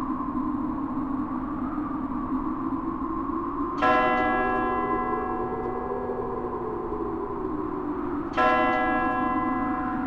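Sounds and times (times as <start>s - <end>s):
church bell stroke: 8.4s - 10.0s.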